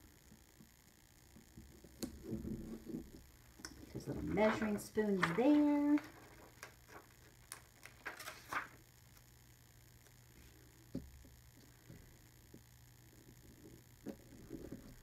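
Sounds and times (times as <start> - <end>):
paper rustling: 4.0 - 8.8.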